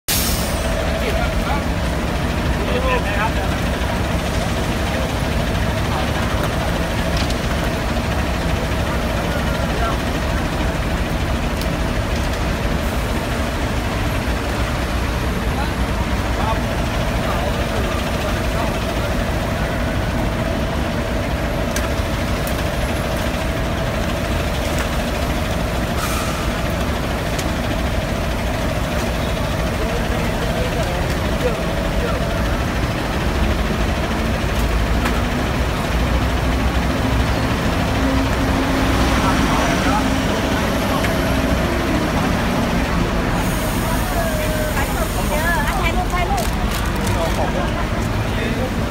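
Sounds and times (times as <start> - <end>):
bus engine idling: 0.1 - 48.9.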